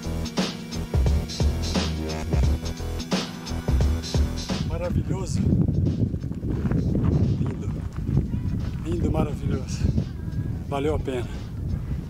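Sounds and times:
background music: 0.0s - 12.0s
wind buffeting microphone: 4.4s - 12.0s.

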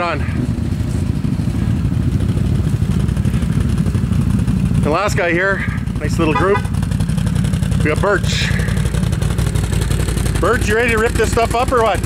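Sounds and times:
atv engine idling: 0.0s - 12.0s.

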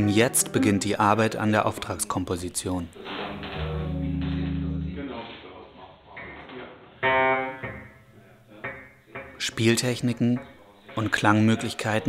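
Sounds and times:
electric bass plucked: 3.4s - 5.0s.

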